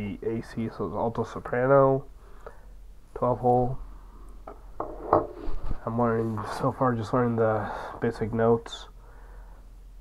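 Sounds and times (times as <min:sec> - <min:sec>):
man talking: 0:00.0 - 0:02.1, 0:03.1 - 0:03.8, 0:05.8 - 0:09.0.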